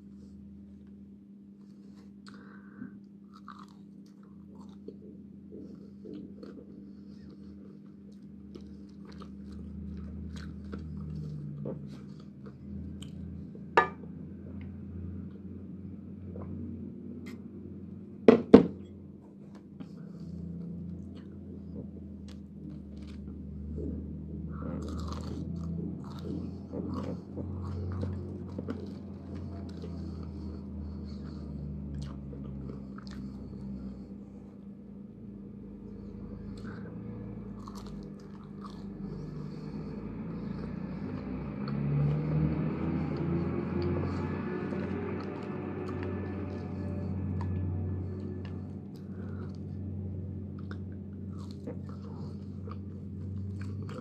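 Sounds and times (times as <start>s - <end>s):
steady low hum: 0.0s - 54.0s
chewing crispy fries: 1.6s - 17.6s, 19.3s - 54.0s.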